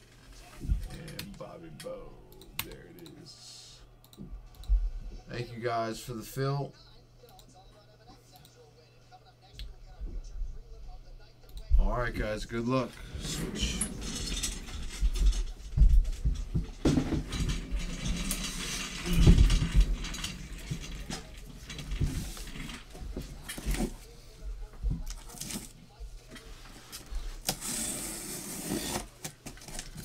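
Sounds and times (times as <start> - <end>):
cardboard scraping: 27.5 - 29.8.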